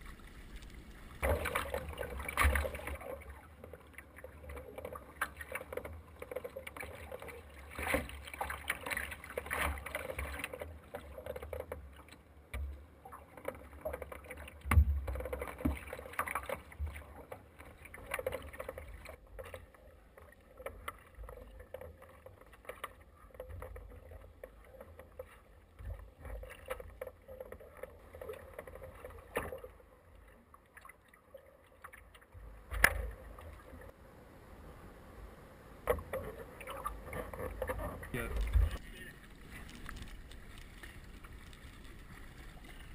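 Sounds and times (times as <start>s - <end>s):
paddle blades splashing: 0.0s - 34.0s, 35.9s - 42.9s
waves washing against hull: 0.0s - 34.0s, 35.8s - 42.9s.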